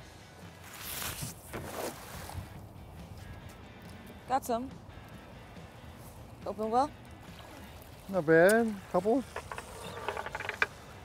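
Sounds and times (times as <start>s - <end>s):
faint music: 0.0s - 11.0s
net splashing onto water: 0.7s - 2.6s.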